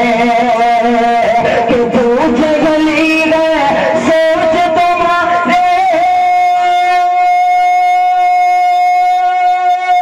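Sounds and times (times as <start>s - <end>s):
person singing a long high note: 0.0s - 10.0s.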